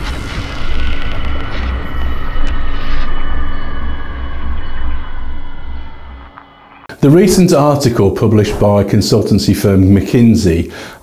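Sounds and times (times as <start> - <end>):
deep rumble: 0.0 - 6.9.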